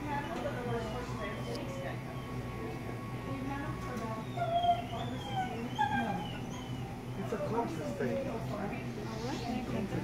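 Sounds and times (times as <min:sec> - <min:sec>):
small animal whining cries: 0:04.2 - 0:07.5.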